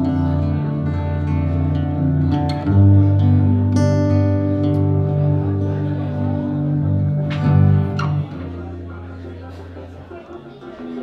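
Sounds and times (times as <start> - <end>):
acoustic guitar chord strum: 0.0 - 9.8.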